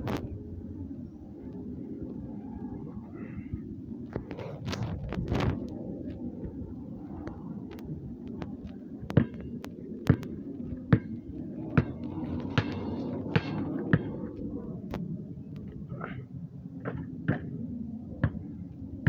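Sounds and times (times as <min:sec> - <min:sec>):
basketball bouncing on concrete: 0:09.1 - 0:09.5, 0:10.1 - 0:14.2, 0:18.2 - 0:18.4.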